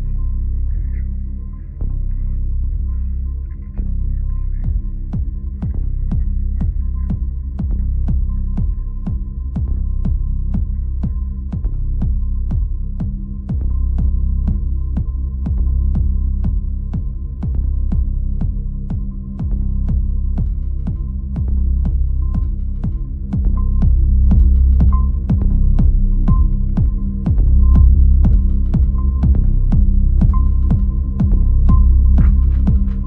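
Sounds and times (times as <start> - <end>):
deep throbbing bass drone: 0.0 - 33.0
sharp click-like beat: 4.6 - 33.0.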